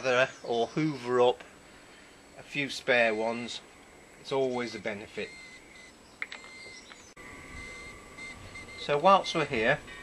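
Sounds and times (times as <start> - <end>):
thin steady high tone: 2.1 - 10.0.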